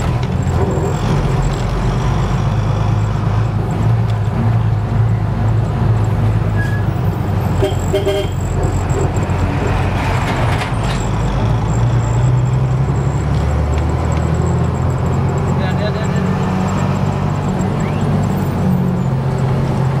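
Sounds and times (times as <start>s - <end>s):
road noise: 0.0s - 20.0s
vehicle engine running: 0.0s - 20.0s.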